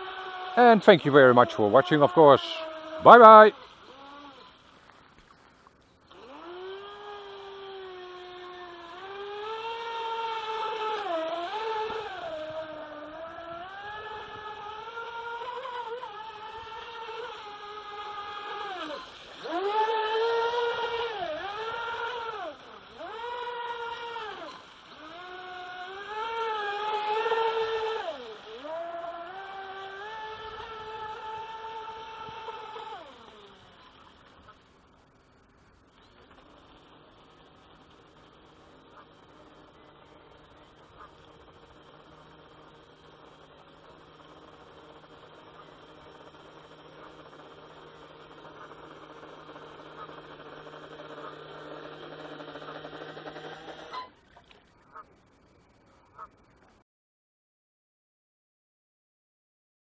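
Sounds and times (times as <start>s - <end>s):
model boat motor whining: 0.0s - 56.8s.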